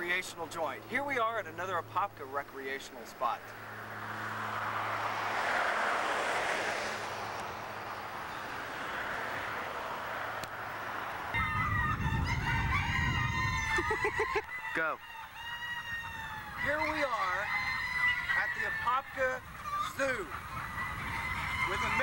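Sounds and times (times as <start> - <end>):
chickens clucking: 13.3 - 22.0.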